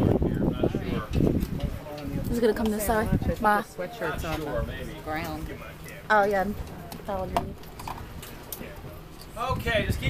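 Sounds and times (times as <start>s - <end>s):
boat rumbling: 0.0s - 10.0s.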